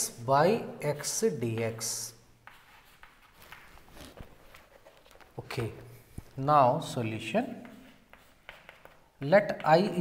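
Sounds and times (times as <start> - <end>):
chalk scratching on chalkboard: 1.6 - 3.6, 7.5 - 10.0.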